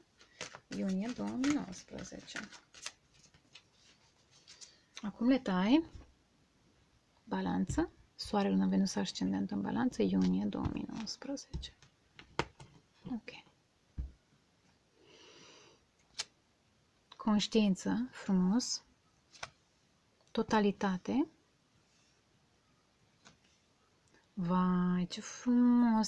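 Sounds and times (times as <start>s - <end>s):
faint soft rustles: 0.2s - 6.1s.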